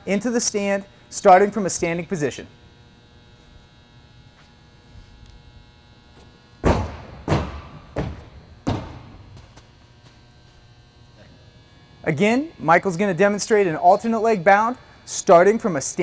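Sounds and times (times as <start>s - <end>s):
feet thudding on runway: 6.6s - 10.2s.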